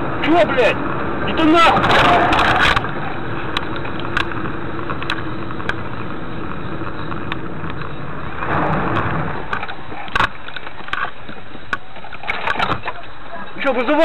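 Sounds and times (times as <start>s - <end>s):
car engine and road noise: 0.0s - 14.0s.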